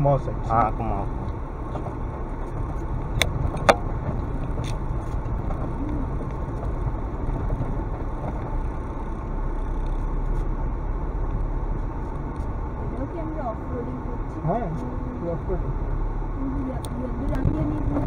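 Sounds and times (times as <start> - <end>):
car rumbling over rough track: 0.0 - 18.0.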